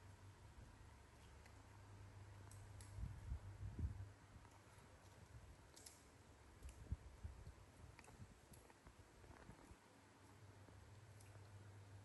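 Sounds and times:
faint clicks: 4.4 - 6.8.

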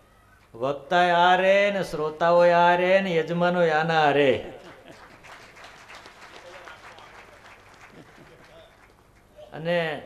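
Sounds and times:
audience applause: 4.8 - 9.3.

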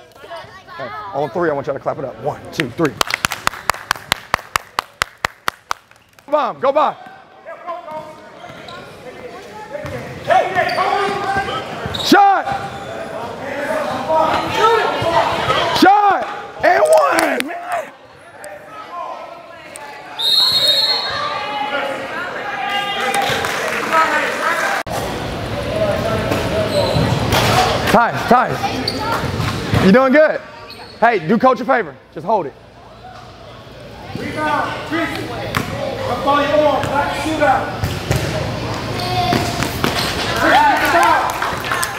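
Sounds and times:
sneakers squeaking on court: 8.0 - 9.0, 9.8 - 13.2, 26.6 - 27.4, 30.6 - 31.0.

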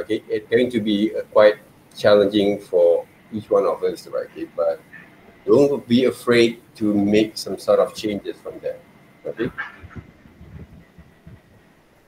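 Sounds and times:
faint low microphone rumble: 0.0 - 12.0.

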